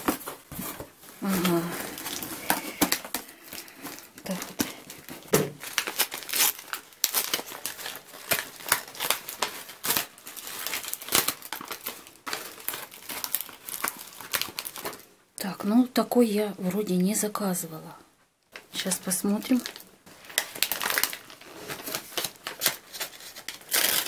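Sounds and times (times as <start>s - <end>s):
newspaper and plastic crinkling: 0.0s - 15.1s, 18.5s - 24.0s.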